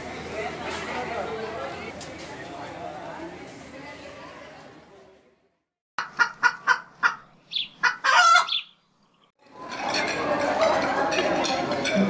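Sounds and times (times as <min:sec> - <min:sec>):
chicken clucking: 0:06.0 - 0:08.7
rooster crowing: 0:07.8 - 0:08.5.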